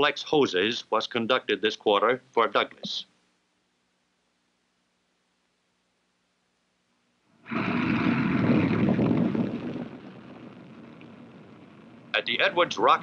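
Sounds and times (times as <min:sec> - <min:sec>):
rocket engine roaring: 0:07.5 - 0:13.0.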